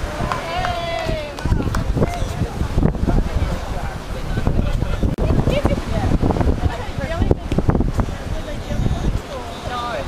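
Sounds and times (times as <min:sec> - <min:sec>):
people talking: 0:00.0 - 0:10.0
wind buffeting microphone: 0:00.0 - 0:10.0.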